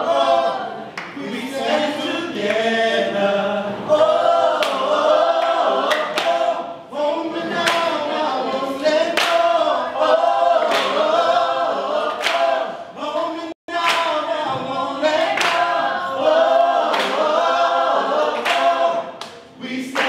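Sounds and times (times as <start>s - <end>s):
group singing a cappella: 0.0s - 20.0s
sharp clap-like beat: 4.6s - 6.6s, 7.6s - 8.0s, 9.1s - 9.6s, 10.6s - 11.2s, 12.1s - 12.7s, 13.7s - 15.8s, 16.8s - 17.4s, 18.3s - 20.0s.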